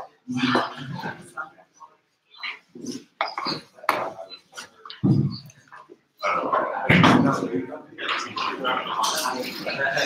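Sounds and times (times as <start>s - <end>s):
scattered voices: 0.0s - 10.0s.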